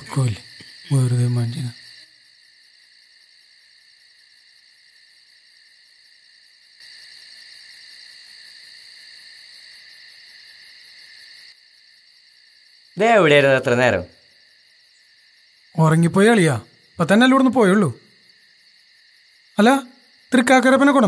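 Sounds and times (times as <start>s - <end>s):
crickets chirping: 0.0s - 21.0s.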